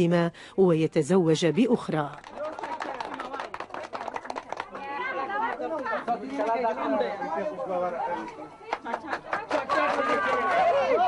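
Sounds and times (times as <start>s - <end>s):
women talking and calling out: 0.0s - 2.2s.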